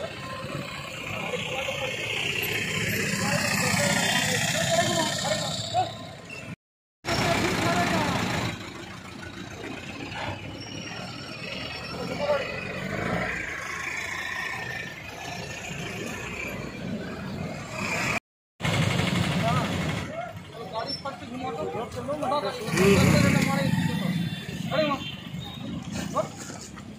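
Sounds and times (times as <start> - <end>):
people talking: 0.0 - 6.1, 7.1 - 8.6, 19.3 - 26.7
car and motorbike engines passing: 0.0 - 6.3, 7.1 - 20.8, 21.4 - 24.9.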